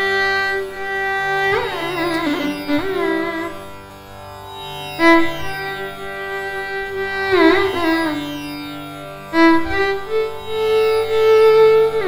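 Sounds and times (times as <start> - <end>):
veena and violin melody: 0.0 - 12.0.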